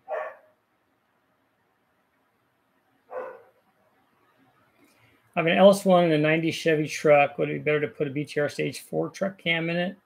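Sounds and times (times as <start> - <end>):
dog barking: 0.0 - 0.6, 3.1 - 3.6.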